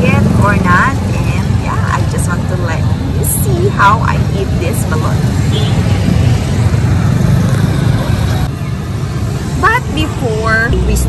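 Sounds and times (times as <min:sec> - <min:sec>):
rumble of passing traffic: 0:00.0 - 0:11.0.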